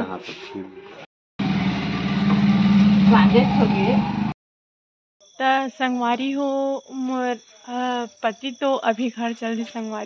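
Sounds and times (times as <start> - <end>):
motorcycle engine running: 1.4 - 4.4.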